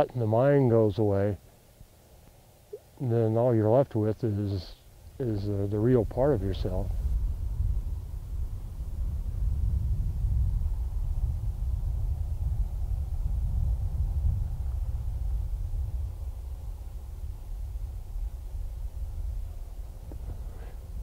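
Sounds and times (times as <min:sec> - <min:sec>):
wind buffeting microphone: 0:05.0 - 0:21.0.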